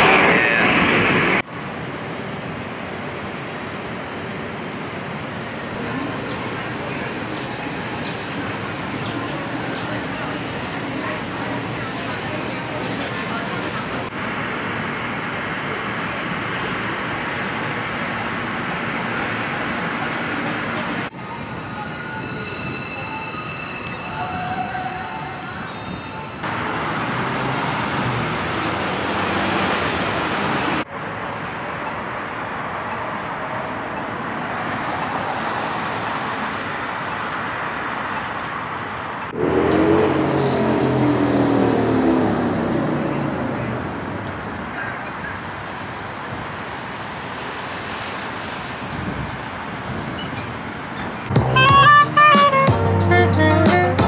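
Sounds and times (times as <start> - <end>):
road traffic: 0.0 - 54.0
engine with wavering pitch: 39.3 - 44.8.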